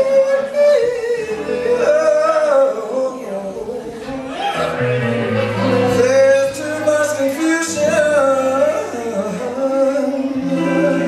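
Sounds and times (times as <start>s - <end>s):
electric guitar: 0.0s - 11.0s
man singing high held note: 0.0s - 11.0s.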